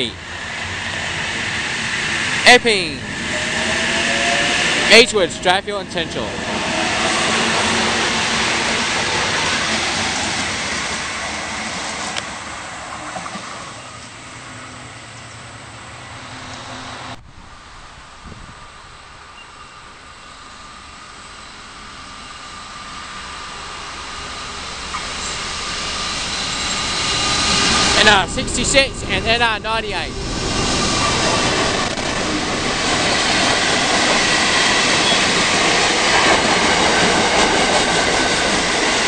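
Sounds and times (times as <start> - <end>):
diesel locomotive approaching: 0.0 - 39.0
electric train passing: 0.0 - 39.0.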